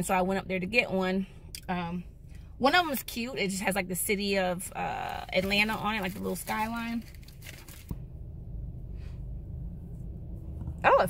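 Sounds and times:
muffled low rumble: 0.0s - 11.0s.

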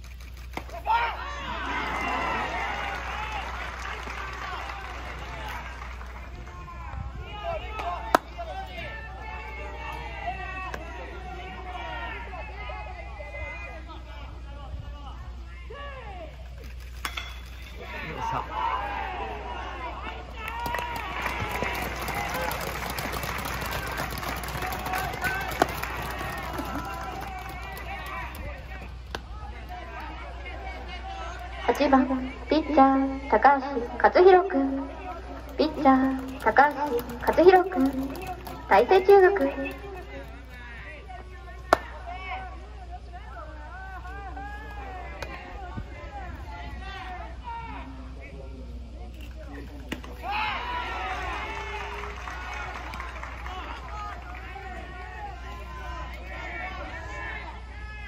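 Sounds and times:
steady low hum: 0.0s - 58.0s
spectator chatter: 0.7s - 58.0s.

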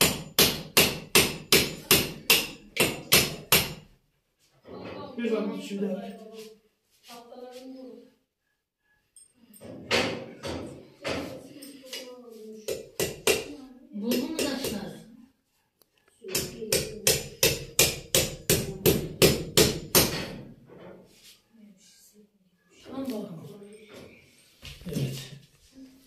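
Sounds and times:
hatchet striking plaster wall: 0.0s - 4.0s, 12.6s - 15.0s, 16.2s - 20.6s.

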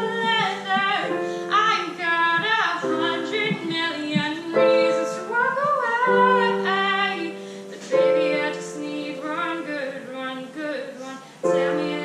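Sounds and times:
piano chords: 0.0s - 12.0s
woman singing slow ballad: 0.0s - 12.0s.

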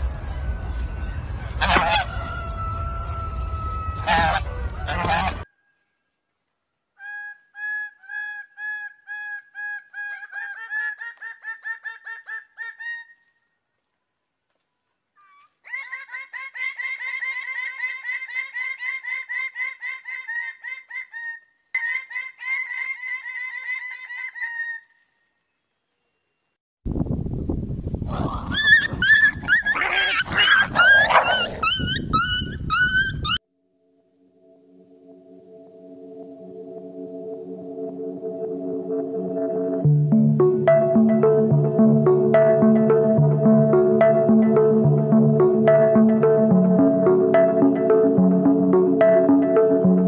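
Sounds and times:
puppy yelping: 28.5s - 33.4s
bird calling loud pitched notes: 36.4s - 50.0s.

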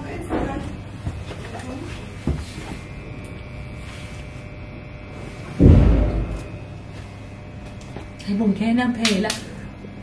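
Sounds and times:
deep thump: 5.6s - 6.5s.

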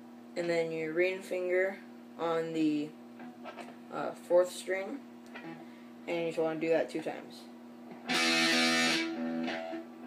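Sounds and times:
electric guitar power chord: 8.0s - 10.0s.

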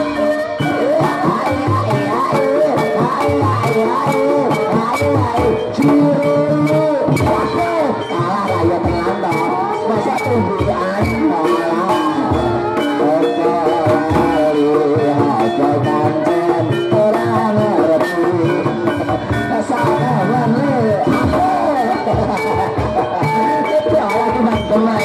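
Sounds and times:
drums beating steadily: 0.0s - 25.0s
sustained pitched percussion tones: 0.0s - 25.0s
wavering melody line: 0.0s - 25.0s.

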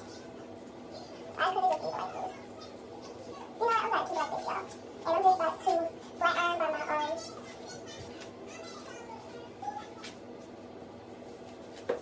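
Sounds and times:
faint steady hum: 0.0s - 12.0s
high-pitched voice speaking: 1.4s - 2.7s, 3.6s - 10.1s.

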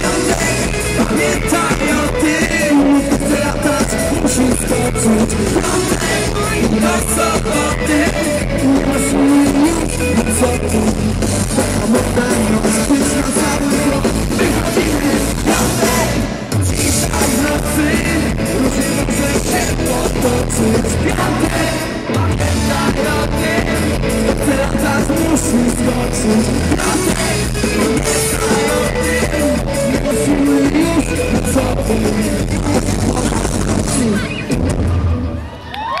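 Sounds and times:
man singing: 0.0s - 34.7s
drum kit: 0.0s - 35.5s
electric guitars: 0.0s - 36.0s
pop-rock band playing live: 0.0s - 36.0s.

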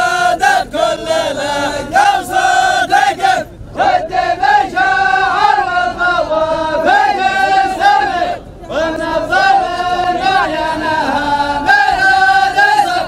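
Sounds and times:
group of men chanting: 0.0s - 13.0s.

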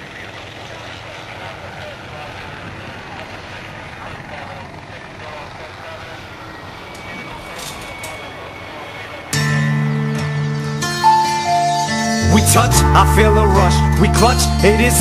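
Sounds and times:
faint murmuring voices: 0.0s - 10.2s.

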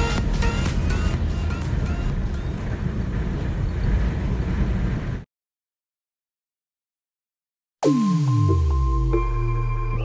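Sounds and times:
background music: 0.0s - 2.6s, 7.8s - 10.0s
car driving rumble from inside: 0.0s - 5.2s.

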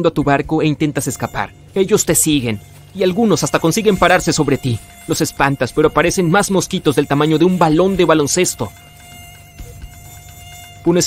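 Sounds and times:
mosquito buzzing: 0.9s - 11.0s.

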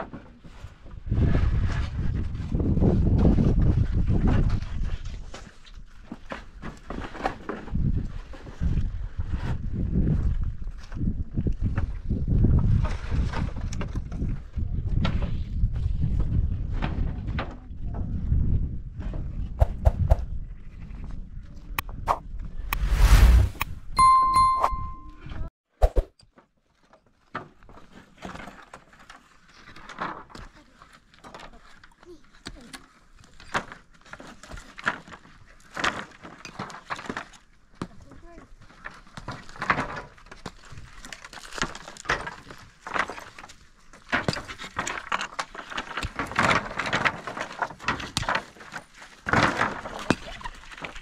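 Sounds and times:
low rumble: 22.7s - 23.9s
electronic ding chime: 24.0s - 25.3s.

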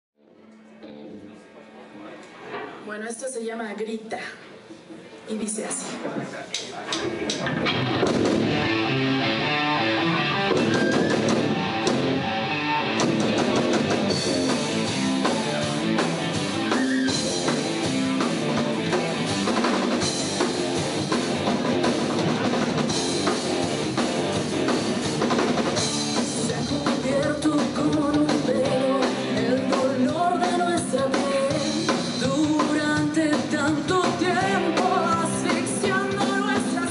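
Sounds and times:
live rock band playing: 7.0s - 36.9s.

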